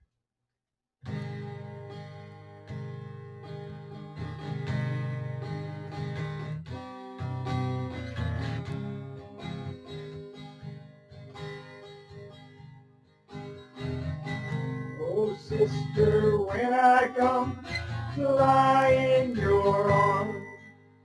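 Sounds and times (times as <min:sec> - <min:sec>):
acoustic guitar playing: 0:01.0 - 0:21.0.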